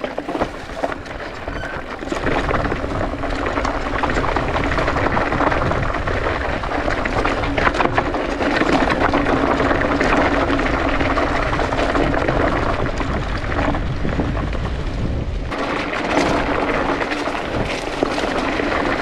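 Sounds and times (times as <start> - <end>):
bike rattles and knocks: 0.0 - 19.0
tyres crunching over gravel: 0.0 - 19.0
wind rumble on microphone: 0.0 - 19.0.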